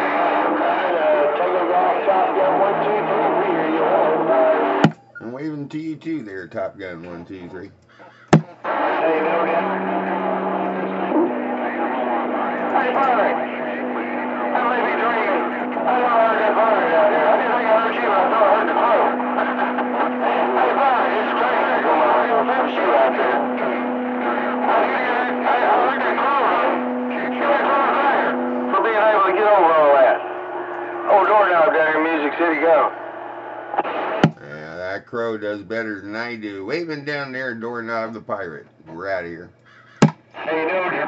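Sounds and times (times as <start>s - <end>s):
radio static: 0.0s - 5.6s, 6.4s - 37.6s, 39.0s - 41.0s
garbled radio voices: 0.0s - 41.0s.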